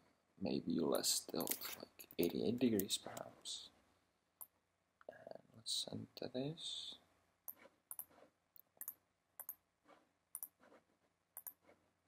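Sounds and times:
computer mouse clicks: 0:07.5 - 0:09.6, 0:11.4 - 0:11.6.

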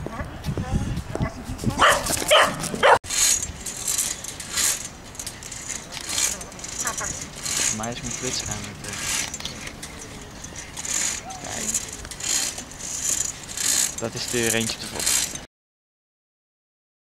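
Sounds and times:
dog barking: 0:01.8 - 0:03.0.

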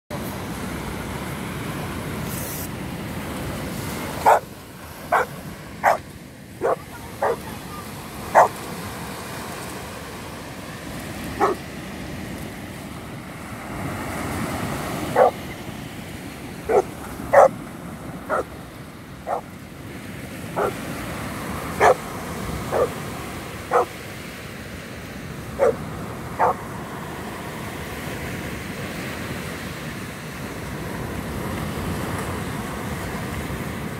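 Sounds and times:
wind: 0:00.0 - 0:33.9
surf: 0:00.1 - 0:33.9
dog barking: 0:04.2 - 0:04.5, 0:05.1 - 0:06.0, 0:06.6 - 0:07.6, 0:08.3 - 0:08.6, 0:11.4 - 0:11.6, 0:15.1 - 0:15.4, 0:16.7 - 0:17.5, 0:18.3 - 0:18.5, 0:19.3 - 0:19.5, 0:20.6 - 0:20.8, 0:21.8 - 0:22.0, 0:22.7 - 0:23.0, 0:23.7 - 0:24.0, 0:25.6 - 0:25.8, 0:26.4 - 0:26.6.

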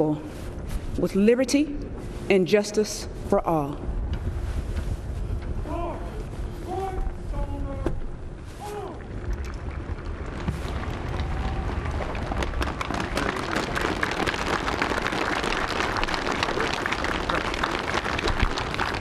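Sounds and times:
low rumble: 0:03.0 - 0:14.5
audience applauding: 0:09.2 - 0:19.0.

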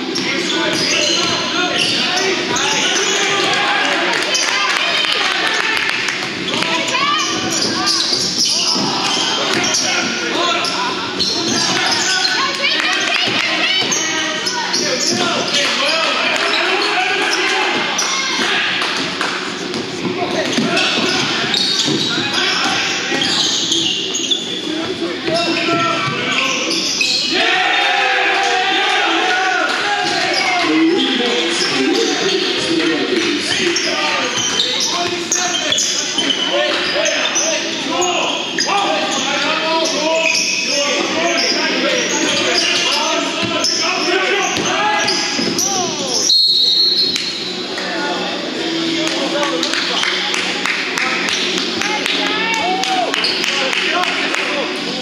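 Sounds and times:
sneakers squeaking: 0:00.0 - 0:27.4, 0:29.7 - 0:49.0, 0:51.2 - 0:53.6.

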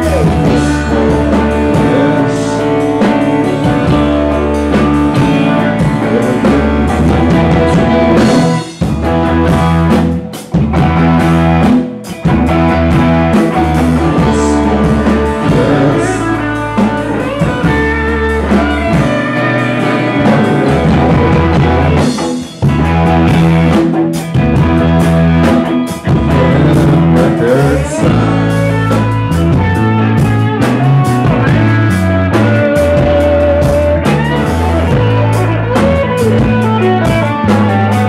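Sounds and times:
live rock band playing: 0:00.0 - 0:38.0.

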